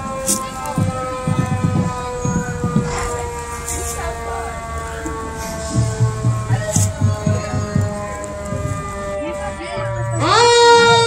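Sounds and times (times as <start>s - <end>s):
siren falling wail: 0.0s - 11.0s
voices: 0.0s - 11.0s.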